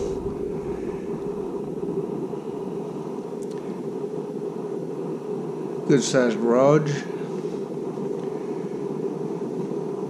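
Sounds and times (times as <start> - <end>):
steady low rushing noise: 0.0 - 3.4.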